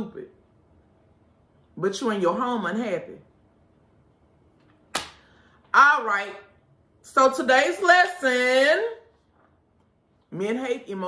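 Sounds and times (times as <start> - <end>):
hand clap: 4.9 - 5.2.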